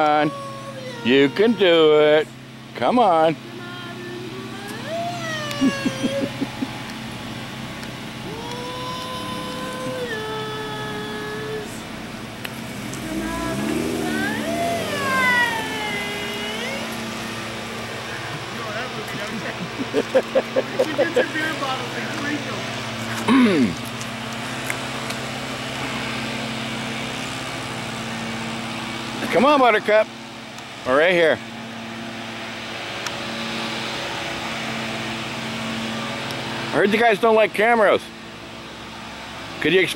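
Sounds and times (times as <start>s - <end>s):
indistinct voices: 0.0s - 7.0s, 8.2s - 12.1s, 12.8s - 23.9s
vehicle engines and road traffic: 0.0s - 39.9s.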